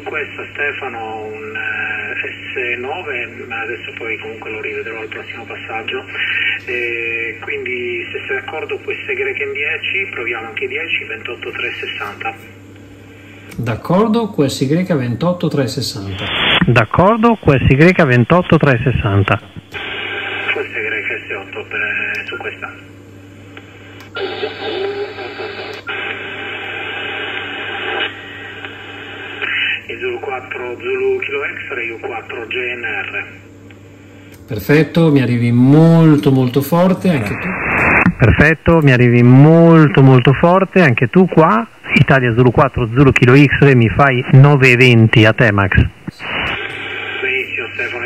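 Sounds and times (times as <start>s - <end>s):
radio receiver hiss and static: 0.0s - 14.2s, 15.4s - 48.0s
steady low hum: 0.0s - 48.0s
distant radio voice: 16.0s - 22.8s.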